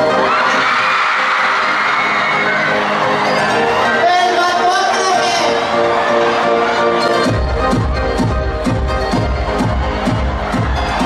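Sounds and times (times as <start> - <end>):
audience cheering and screaming: 0.0 - 4.4, 5.4 - 11.0
pop concert backing music: 0.0 - 11.0.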